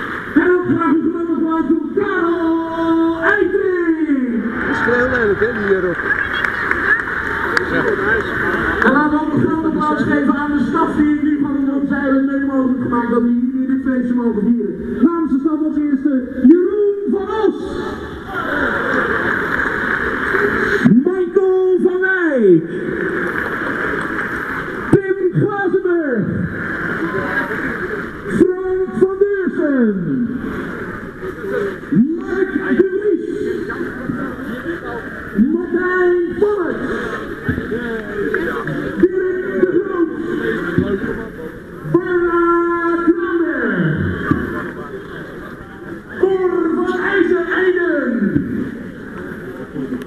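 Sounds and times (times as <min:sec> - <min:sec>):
stadium crowd noise: 0:00.0 - 0:50.0.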